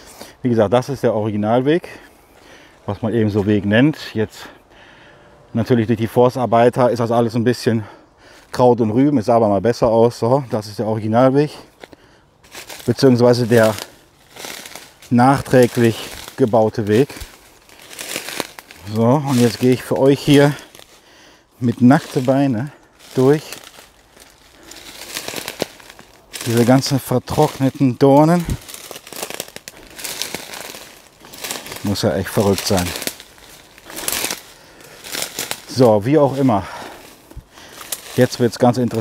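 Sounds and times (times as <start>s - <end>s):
footsteps on dry leaves: 9.8s - 39.0s.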